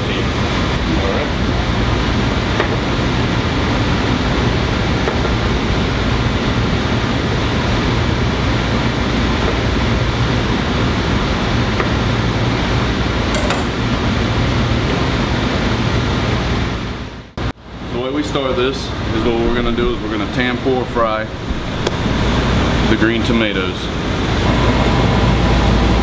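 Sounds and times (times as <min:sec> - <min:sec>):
ventilation fan noise: 0:00.0 - 0:26.0
low hum: 0:18.4 - 0:26.0.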